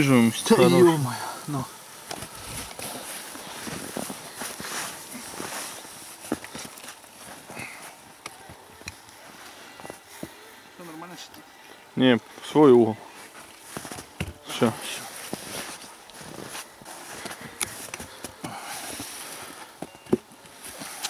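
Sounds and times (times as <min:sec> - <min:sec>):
footsteps in snow: 0:02.2 - 0:11.1, 0:13.0 - 0:21.0.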